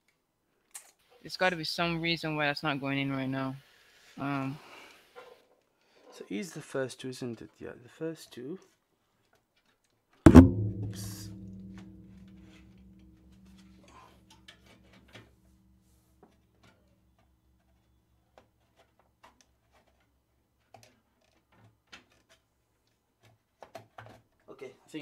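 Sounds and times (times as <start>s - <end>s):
hard knock: 10.3s - 13.7s
low ringing hum: 10.3s - 14.2s.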